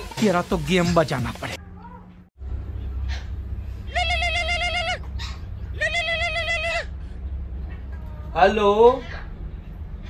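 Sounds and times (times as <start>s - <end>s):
goat bleat ringtone: 3.9s - 5.0s, 5.8s - 6.8s.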